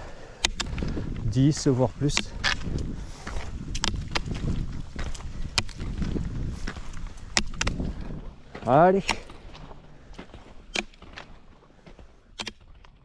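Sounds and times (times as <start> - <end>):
ski poles clicking on tarmac: 0.0 - 13.0
wheels rolling on asphalt: 0.7 - 13.0.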